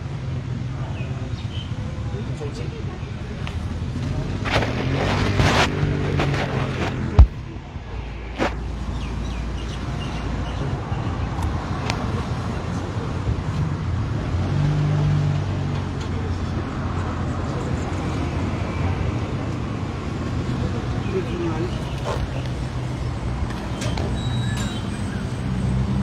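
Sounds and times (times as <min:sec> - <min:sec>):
street traffic noise: 0:00.0 - 0:26.0
vehicle engine hum: 0:00.0 - 0:26.0.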